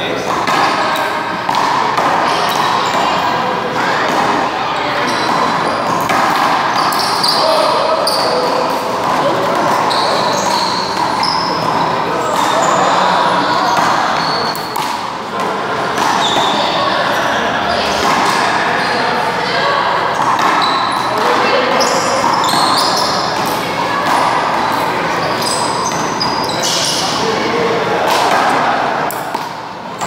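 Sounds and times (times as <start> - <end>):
players' voices: 0.0 - 30.0.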